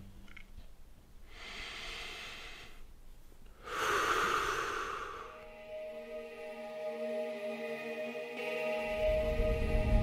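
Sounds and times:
man breathing deeply: 0:01.2 - 0:02.9, 0:03.6 - 0:05.7.

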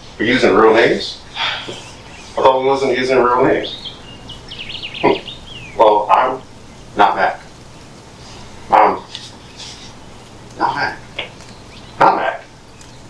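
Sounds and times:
men's voices exclaiming: 0:00.2 - 0:12.6.

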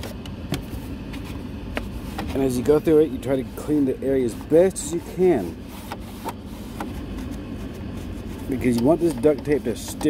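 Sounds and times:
steady low rumble: 0:00.0 - 0:10.0
rag rubbing plastic: 0:00.7 - 0:10.0.

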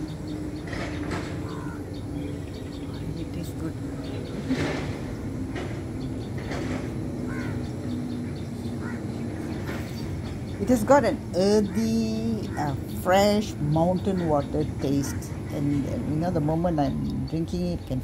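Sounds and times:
faint bird calls: 0:00.0 - 0:10.7
low outdoor background hum: 0:00.0 - 0:18.0.

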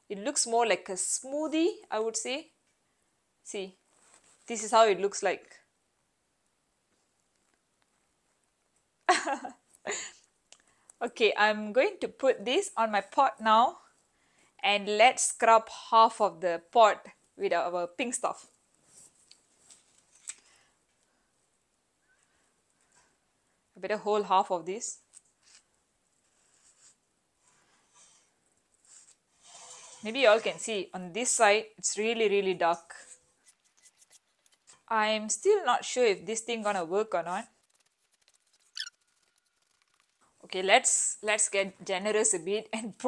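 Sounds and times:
soft rustle: 0:03.8 - 0:04.8, 0:18.4 - 0:23.6, 0:25.0 - 0:30.7, 0:32.9 - 0:34.9, 0:36.5 - 0:40.5
sponge squeaking on steel pot: 0:33.4 - 0:34.9, 0:37.4 - 0:40.2.

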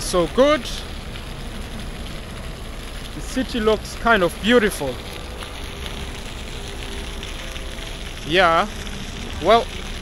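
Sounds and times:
even hiss: 0:00.0 - 0:10.0
low rumble: 0:00.0 - 0:10.0.

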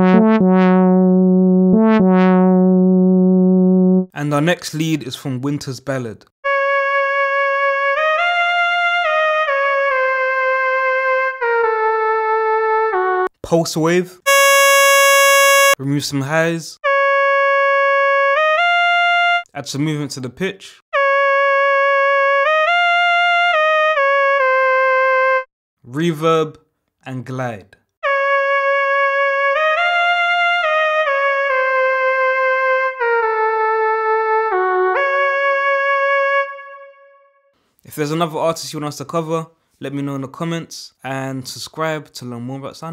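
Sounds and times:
synth lead melody with glide: 0:00.0 - 0:04.1, 0:14.3 - 0:15.8, 0:33.4 - 0:37.4.

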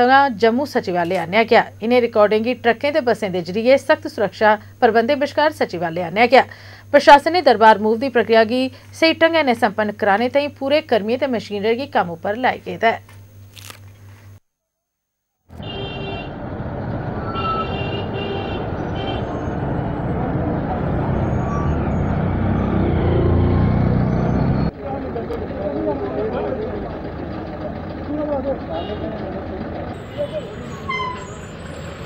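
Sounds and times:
diesel trucks driving past: 0:15.5 - 0:32.0
traffic noise: 0:15.5 - 0:32.0
people's voices: 0:24.7 - 0:31.0.

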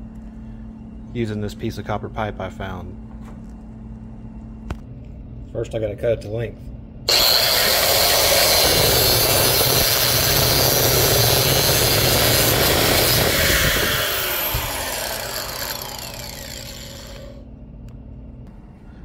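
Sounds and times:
angle grinder cutting metal tubing: 0:07.1 - 0:17.4.

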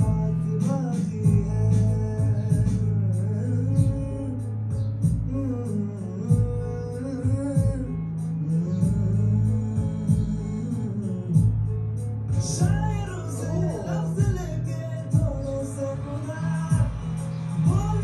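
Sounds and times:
man singing: 0:00.0 - 0:18.0
strummed acoustic guitar: 0:00.0 - 0:18.0.

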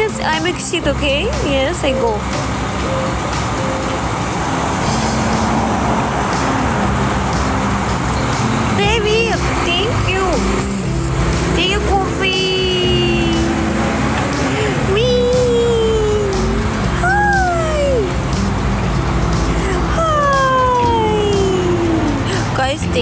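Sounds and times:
music with low bass line: 0:00.0 - 0:23.0
street traffic: 0:00.0 - 0:23.0
vehicle passing: 0:00.0 - 0:23.0
person speaking: 0:08.8 - 0:18.2, 0:19.5 - 0:23.0.

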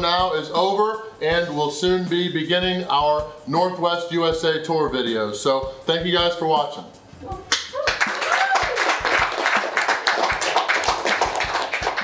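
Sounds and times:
crowd clapping: 0:07.5 - 0:12.0.

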